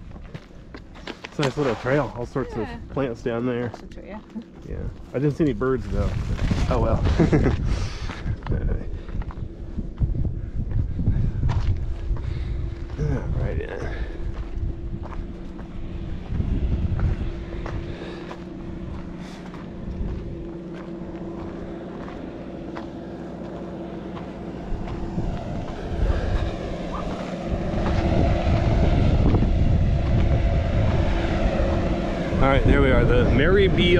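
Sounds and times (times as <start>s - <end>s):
footsteps on rocky trail: 0.0s - 2.0s, 8.0s - 13.0s, 13.9s - 25.8s
mechanical hum: 0.0s - 33.9s
wind buffeting microphone: 4.6s - 33.9s.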